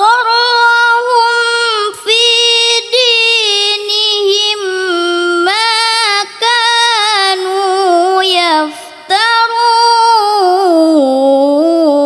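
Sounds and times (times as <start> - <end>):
girl reciting melodically: 0.0 - 12.0.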